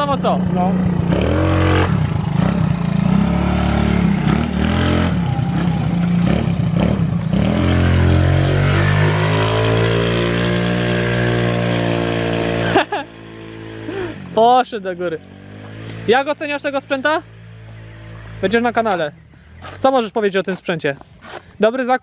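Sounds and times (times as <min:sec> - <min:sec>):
scooter engine revving: 0:00.0 - 0:18.8.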